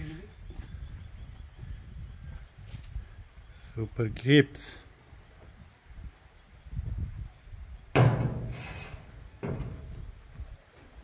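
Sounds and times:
thumps: 7.9 - 10.1.

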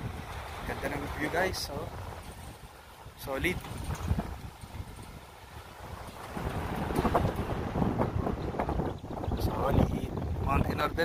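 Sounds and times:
wind gusting over microphone: 0.0 - 11.0.

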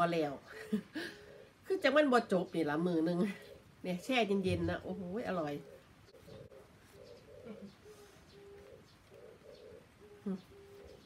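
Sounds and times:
dove cooing: 0.6 - 1.8, 3.2 - 11.0.

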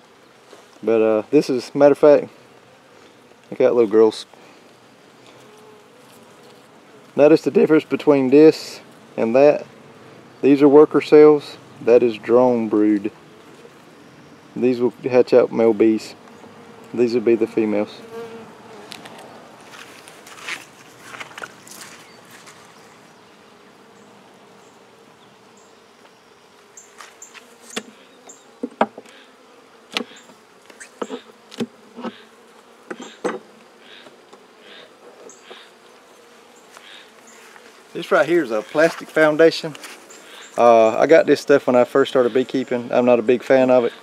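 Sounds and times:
bees buzzing: 0.0 - 44.0
wooden frames knocking: 28.6 - 29.1.

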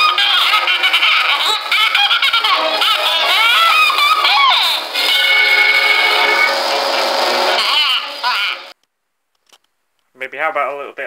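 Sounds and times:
warbling cartoon voice calls: 0.0 - 6.5, 7.4 - 8.8
old cartoon music: 0.0 - 8.7.

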